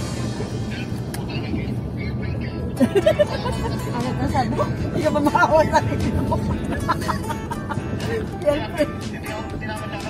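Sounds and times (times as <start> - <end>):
background music: 0.0 - 10.0
car engine and road rumble: 0.0 - 10.0.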